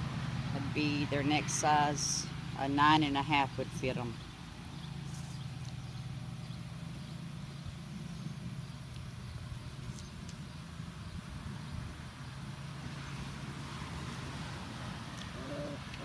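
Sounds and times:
low mechanical hum: 0.0 - 16.0.

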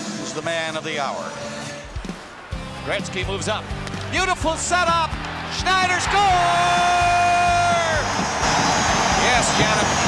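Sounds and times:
arena crowd cheering: 2.5 - 10.0.

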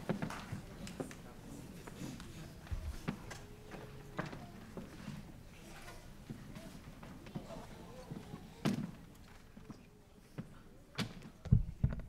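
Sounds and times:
faint low voices: 0.0 - 12.0.

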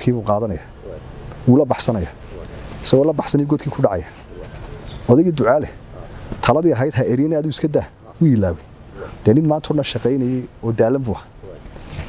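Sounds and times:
man speaking: 0.0 - 11.7.

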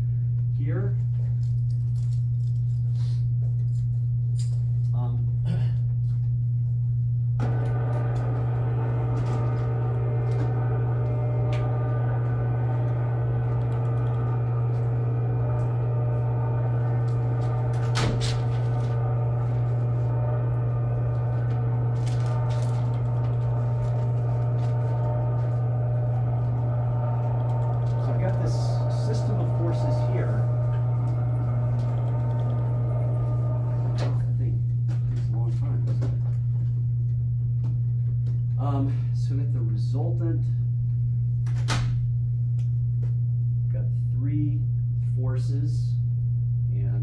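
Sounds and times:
high steady whine: 0.0 - 47.0
machinery room hum: 0.0 - 47.0.

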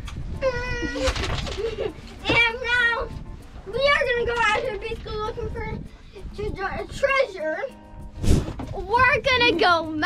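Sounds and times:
child's high-pitched voice: 2.2 - 7.8, 8.7 - 10.0.

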